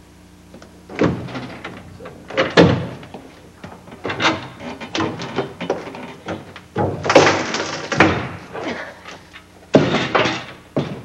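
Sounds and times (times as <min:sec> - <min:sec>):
window knocks bangs and rattles: 0:00.9 - 0:03.2, 0:04.0 - 0:08.5, 0:09.7 - 0:11.0.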